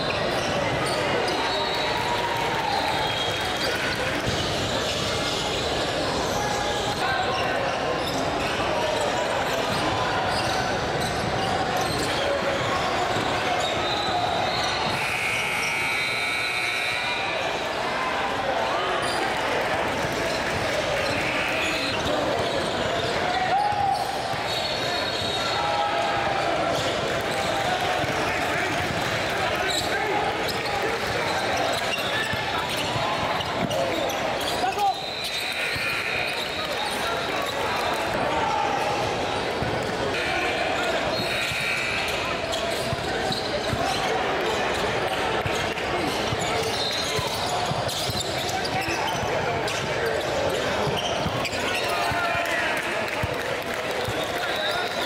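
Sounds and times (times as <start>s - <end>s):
hubbub of voices: 0.0s - 55.0s.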